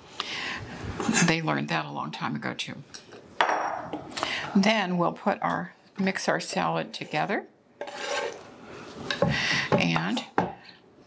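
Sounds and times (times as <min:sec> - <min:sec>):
knife scraping cutting board: 0:07.8 - 0:08.5.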